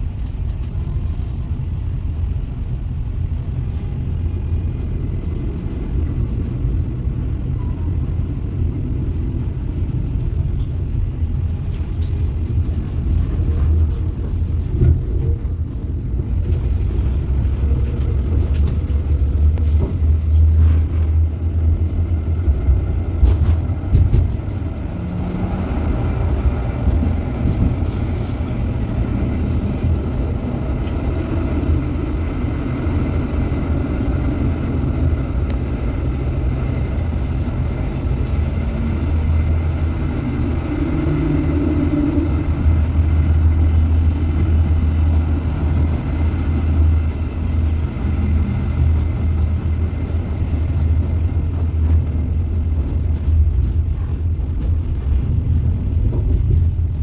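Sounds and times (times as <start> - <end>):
tram rumbling along rails: 0.0 - 57.0.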